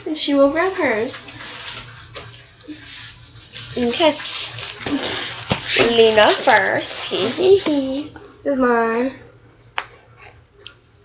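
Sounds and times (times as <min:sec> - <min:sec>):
binders rustling and handled: 0:03.5 - 0:08.0.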